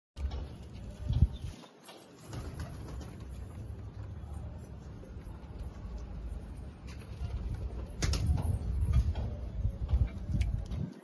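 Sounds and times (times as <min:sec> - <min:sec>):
pigeons moving in wire cage: 0:00.2 - 0:10.9.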